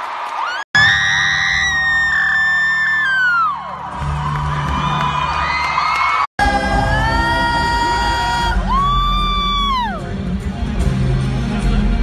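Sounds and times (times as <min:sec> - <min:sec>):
crowd cheering: 0:00.0 - 0:10.0
rock band bass: 0:06.4 - 0:12.0.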